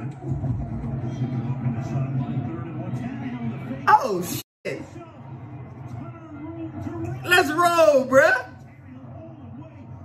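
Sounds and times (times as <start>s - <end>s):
announcer's voice: 7.2s - 8.6s.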